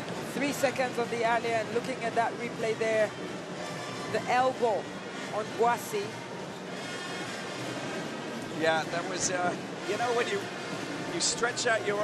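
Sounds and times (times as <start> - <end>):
arena crowd noise: 0.0 - 12.0
faint music: 0.0 - 12.0.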